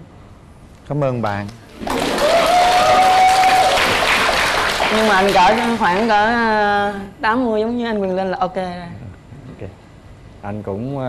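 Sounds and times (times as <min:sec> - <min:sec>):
audience applauding: 0:01.7 - 0:06.4.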